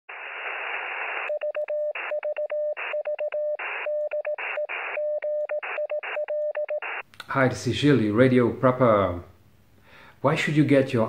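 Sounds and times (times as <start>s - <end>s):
radio static hiss: 0.1s - 2.2s, 3.6s - 5.0s, 6.8s - 7.0s
morse code beeps: 1.3s - 7.0s.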